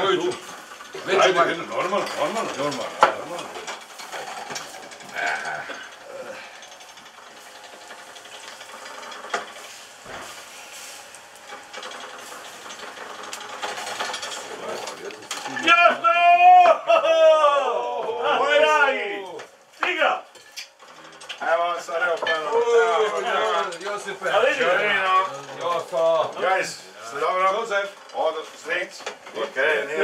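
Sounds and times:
voices calling out: 0:00.0 - 0:20.3.

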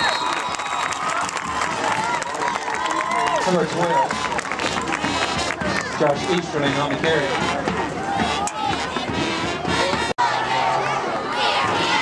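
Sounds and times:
crowd talking and calling out: 0:00.0 - 0:12.0
brass band playing: 0:04.1 - 0:10.2.

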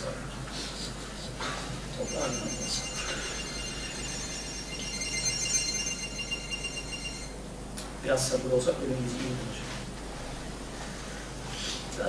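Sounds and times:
high-pitched electronic alarm: 0:02.0 - 0:07.4.

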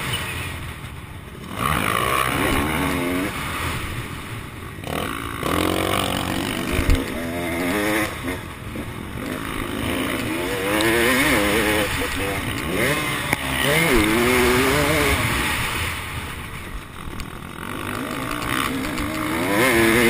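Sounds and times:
motocross engine revving: 0:01.4 - 0:20.0.

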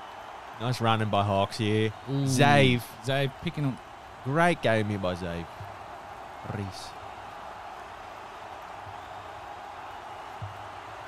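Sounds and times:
person saying a word: 0:02.3 - 0:02.8.

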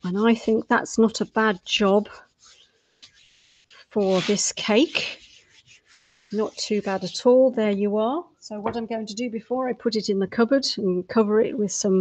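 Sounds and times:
hands rubbing icing: 0:00.5 - 0:07.5.

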